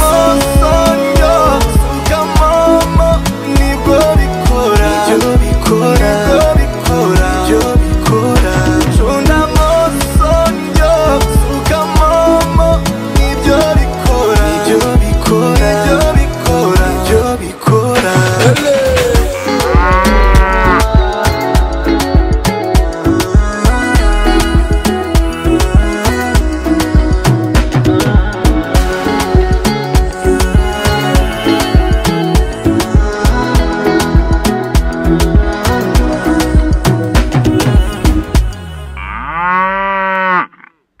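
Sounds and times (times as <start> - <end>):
hip-hop beat with bass kicks: 0.0 - 39.0
cow mooing: 19.4 - 20.9, 39.0 - 40.8.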